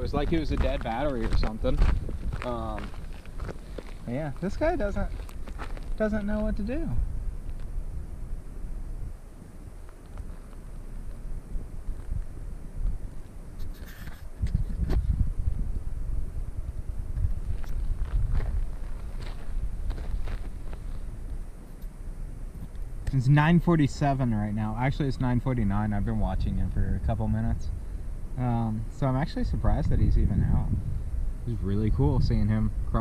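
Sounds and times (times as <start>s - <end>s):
crunches on gravel and grass: 0.0s - 6.8s, 9.8s - 15.6s, 17.2s - 21.9s
wind buffeting microphone: 0.0s - 33.0s.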